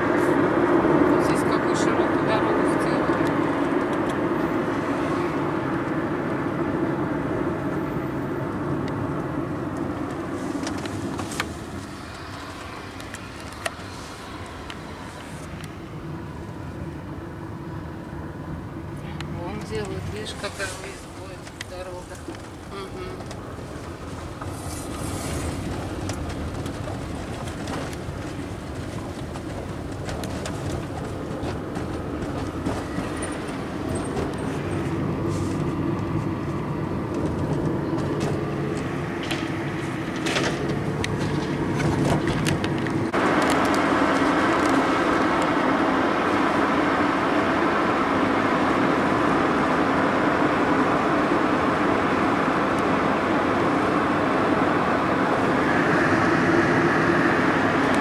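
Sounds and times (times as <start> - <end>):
tyre and engine rumble in car: 0.0 - 58.0.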